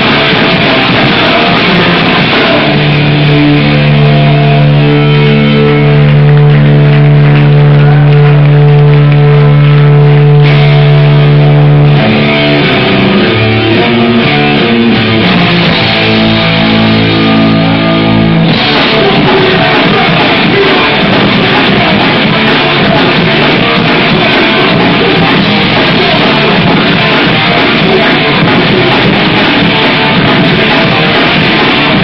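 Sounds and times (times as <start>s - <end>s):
hardcore band playing live: 0.0s - 32.0s.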